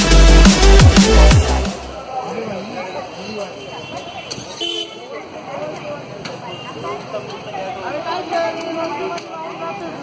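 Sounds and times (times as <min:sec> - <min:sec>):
street noise: 0:00.0 - 0:10.0
people's voices: 0:00.2 - 0:10.0
vehicle horn honk: 0:03.7 - 0:05.0.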